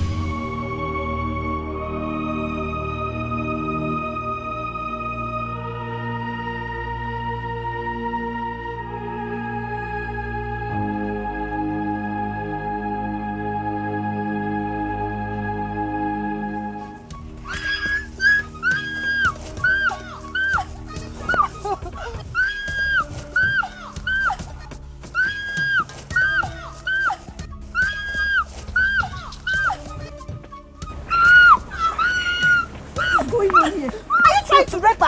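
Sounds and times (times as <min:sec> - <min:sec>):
high film score melody: 0:00.0 - 0:35.0.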